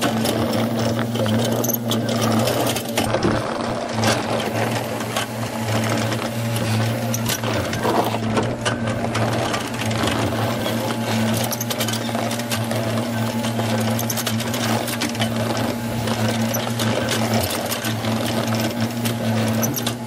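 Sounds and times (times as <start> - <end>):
diesel engine running: 0.0 - 20.0.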